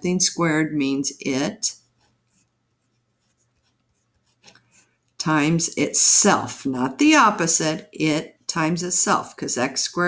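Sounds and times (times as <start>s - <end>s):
low steady hum: 0.0s - 10.0s
pen scratching on paper: 1.7s - 6.2s.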